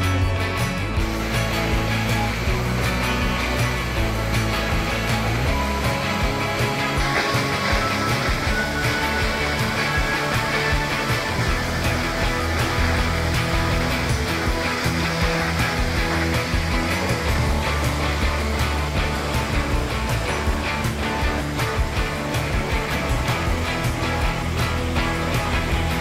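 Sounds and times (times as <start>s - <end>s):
background music with beat and bass: 0.0s - 26.0s.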